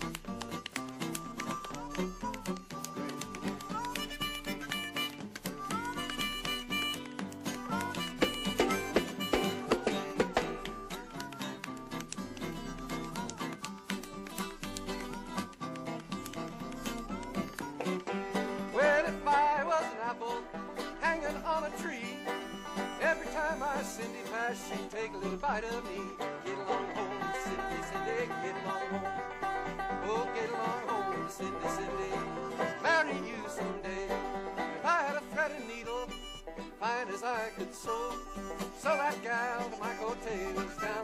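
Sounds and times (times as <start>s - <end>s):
banjo and guitar picking: 0.0s - 41.0s.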